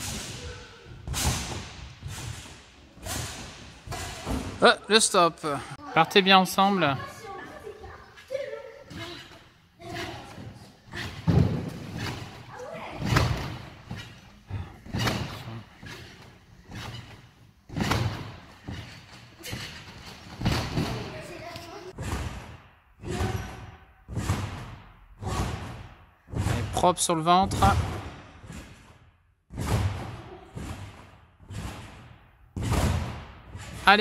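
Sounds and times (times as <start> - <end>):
thumps on trampolines: 0.0 - 4.7, 8.3 - 26.8, 27.5 - 34.0.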